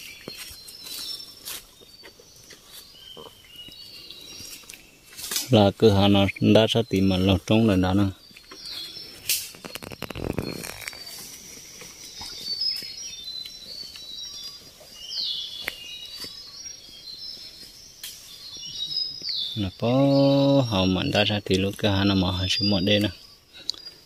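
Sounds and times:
birds chirping: 0.0 - 24.0
rustle of undergrowth: 0.0 - 24.0.

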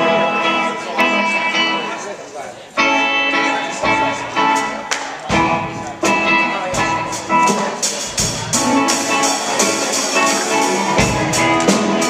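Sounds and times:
live band playing: 0.0 - 12.0
strummed guitar chords: 0.0 - 12.0.

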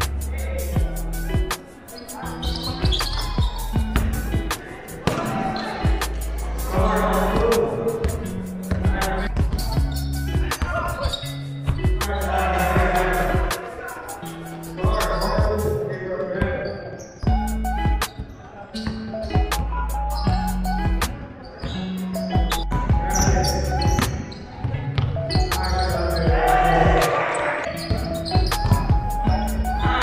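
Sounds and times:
music with heavy bass: 0.0 - 1.6, 2.6 - 4.5, 5.8 - 13.6, 14.2 - 15.8, 17.3 - 18.1, 19.3 - 21.1, 22.0 - 24.0, 25.3 - 27.1, 27.8 - 30.0
voices: 0.2 - 11.4, 12.0 - 17.2, 18.0 - 30.0.

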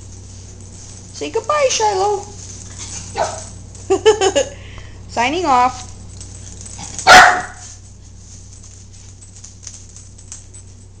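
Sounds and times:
dog barking: 7.0 - 7.6.

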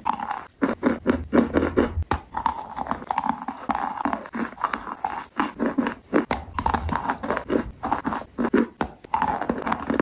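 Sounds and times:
crunchy chewing: 0.0 - 10.0.

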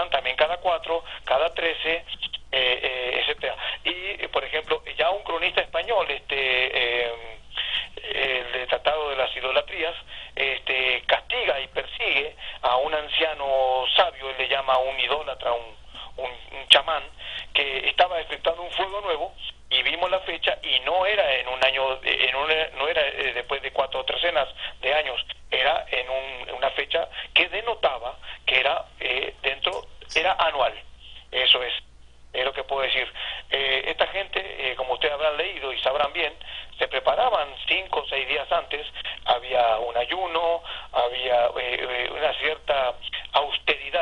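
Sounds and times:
person talking over telephone: 0.0 - 44.0.

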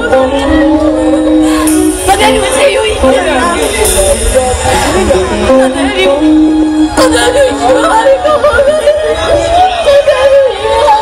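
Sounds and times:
traditional stage music: 0.0 - 11.0.

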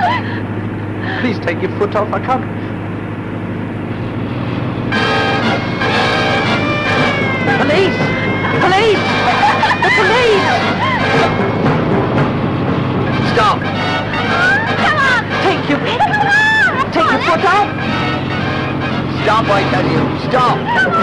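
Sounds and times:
car engine hum: 0.0 - 21.0
music with long held notes: 3.9 - 21.0
voices rising and falling: 4.9 - 21.0.

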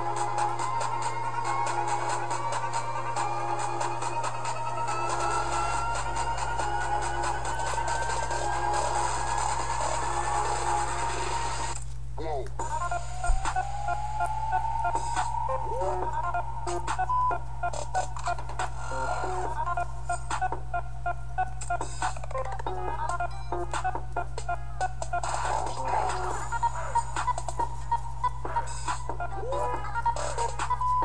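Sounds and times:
trap music with deep bass: 0.0 - 31.0.

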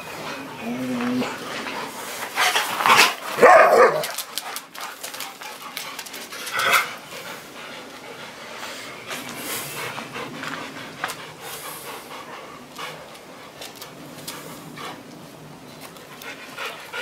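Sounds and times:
dogs barking: 2.9 - 4.2.

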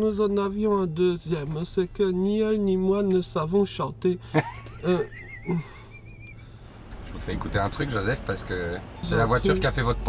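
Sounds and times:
person chuckling: 4.4 - 6.4.

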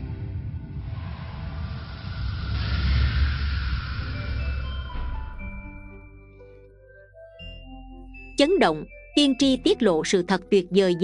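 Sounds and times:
music: 0.0 - 1.7, 2.6 - 11.0
whoosh with low rumble: 0.0 - 6.2.

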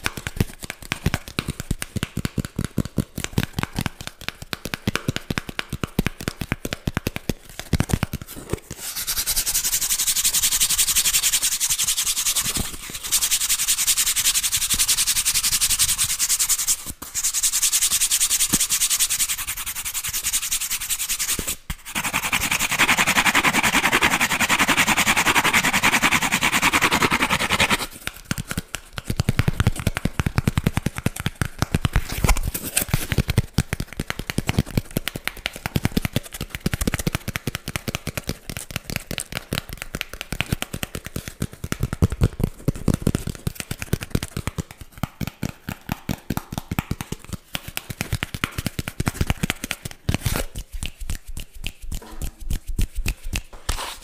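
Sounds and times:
rapid taps and crackles: 0.0 - 8.3, 28.0 - 50.0
cardboard rubbing and scratching: 15.5 - 27.9, 53.5 - 54.0.

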